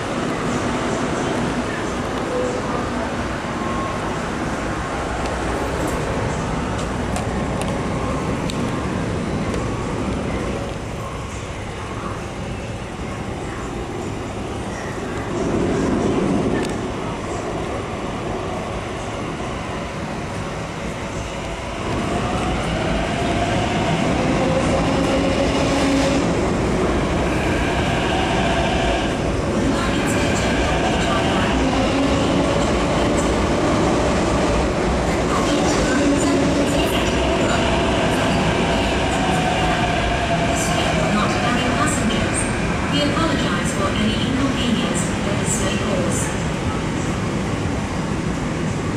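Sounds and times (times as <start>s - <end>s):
metro train rumble: 0.0s - 48.9s.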